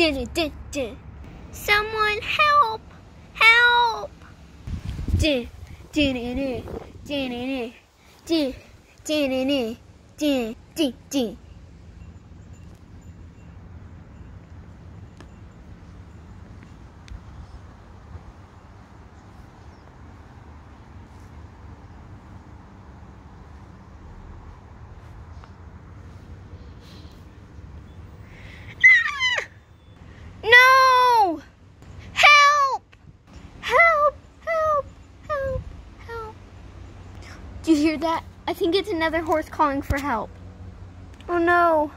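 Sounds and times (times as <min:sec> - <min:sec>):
high voice calling out: 0:01.6 - 0:04.2, 0:33.6 - 0:36.4
steady low rumble: 0:04.0 - 0:28.7.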